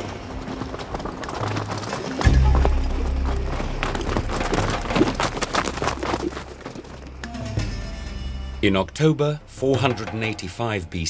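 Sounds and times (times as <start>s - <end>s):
horse hooves clip-clopping: 0.0s - 8.2s
orchestral music: 2.0s - 11.0s.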